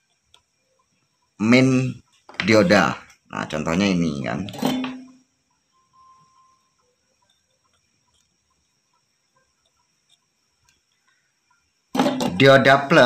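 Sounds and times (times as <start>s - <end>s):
faint ticks: 0.0s - 1.4s, 5.1s - 12.0s
faint tone: 3.8s - 7.5s.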